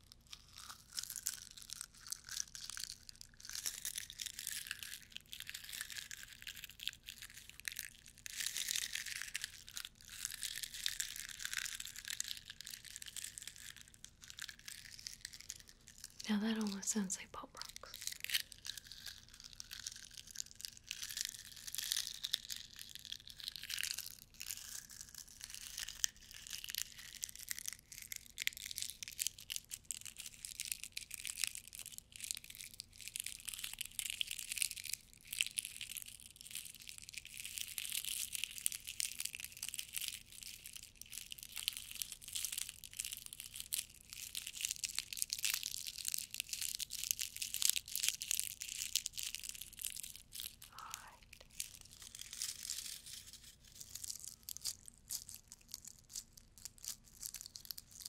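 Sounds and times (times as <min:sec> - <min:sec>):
foil crinkling and tearing: 0:00.0 - 0:16.2, 0:17.9 - 0:58.0.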